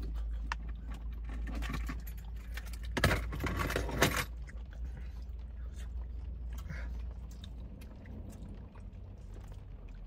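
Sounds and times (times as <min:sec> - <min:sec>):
low hum inside a car: 0:00.0 - 0:10.0.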